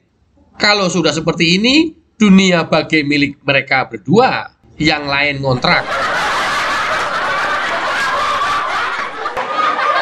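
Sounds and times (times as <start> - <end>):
group of people laughing: 5.6 - 10.0.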